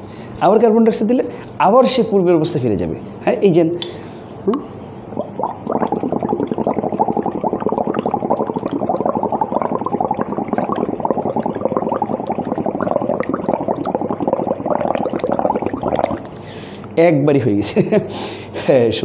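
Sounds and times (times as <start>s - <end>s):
breath bubbling through liquid: 4.6s - 16.8s.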